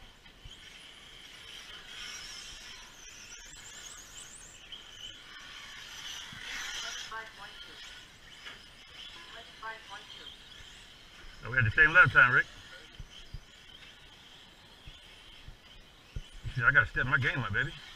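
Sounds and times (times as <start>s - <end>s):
distant voices: 0.0s - 17.9s
rc car motors whining: 0.0s - 17.9s.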